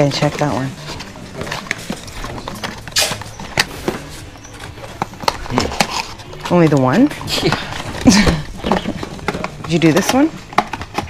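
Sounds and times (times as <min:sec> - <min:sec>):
cardboard boxes tapping together: 0:00.0 - 0:11.0.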